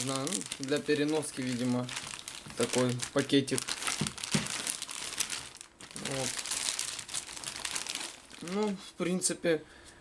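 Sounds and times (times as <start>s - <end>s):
plastic bag crinkling: 0.0s - 9.0s.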